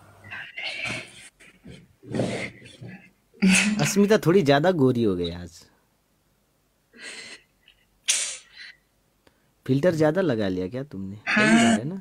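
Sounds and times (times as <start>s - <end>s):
cat meowing: 11.3s - 11.8s.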